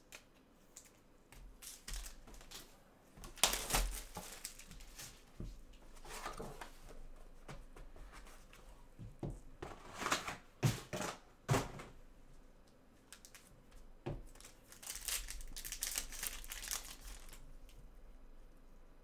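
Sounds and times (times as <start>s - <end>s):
foil wrapper crinkling and tearing: 3.3s - 5.1s, 14.3s - 17.5s.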